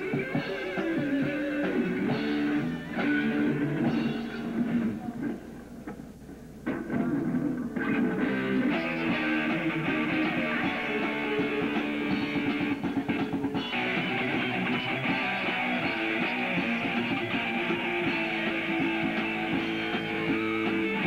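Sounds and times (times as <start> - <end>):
drums: 0.0 - 21.0
electric guitars: 0.0 - 21.0.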